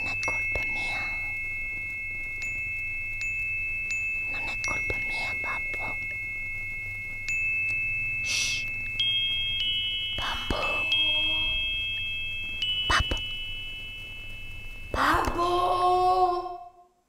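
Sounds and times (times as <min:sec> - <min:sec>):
high metallic chimes ringing: 0:00.0 - 0:16.8.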